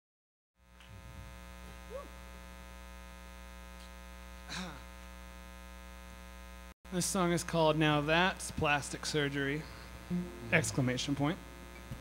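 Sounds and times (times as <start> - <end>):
electrical mains hum: 0.6 - 12.0.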